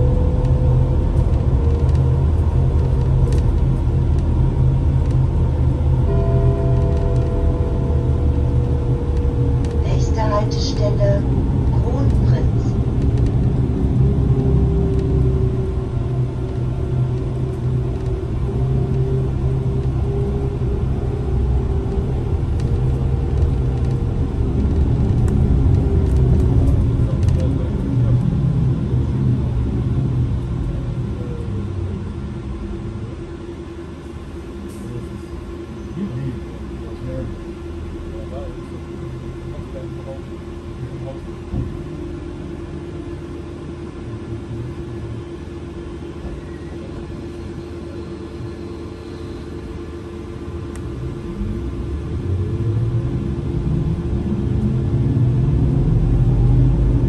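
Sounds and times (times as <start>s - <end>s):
road and tyre rumble: 0.0s - 57.0s.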